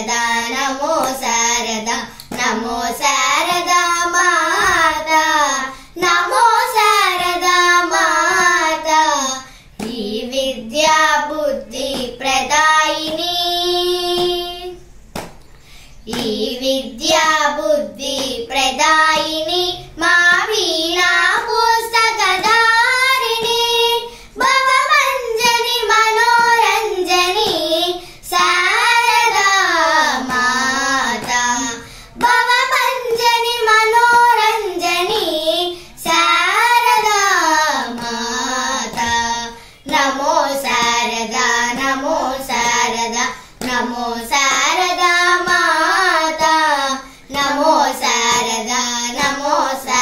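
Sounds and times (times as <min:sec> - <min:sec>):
girls singing in unison: 0:00.0 - 0:15.3, 0:16.0 - 0:50.0.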